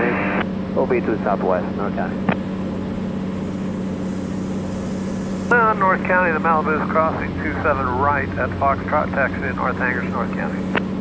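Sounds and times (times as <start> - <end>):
propeller plane engine droning: 0.0 - 11.0
air noise hiss: 3.2 - 7.8.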